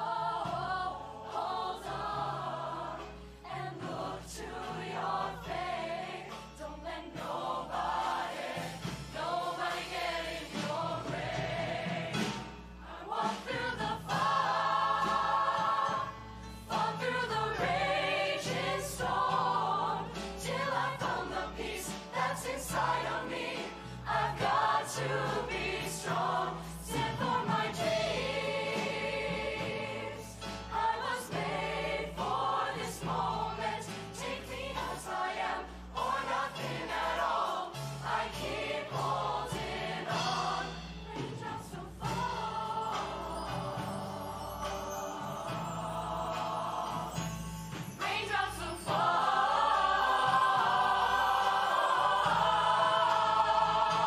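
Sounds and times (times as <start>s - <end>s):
choir singing in parts: 0.0s - 54.0s.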